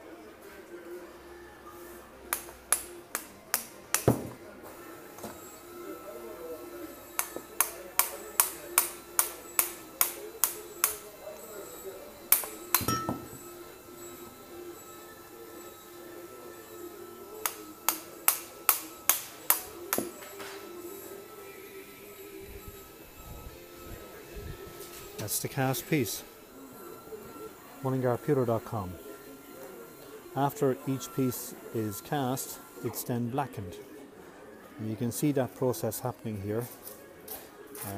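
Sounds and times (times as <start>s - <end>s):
metal tool tapping pewter: 12.3s - 13.4s.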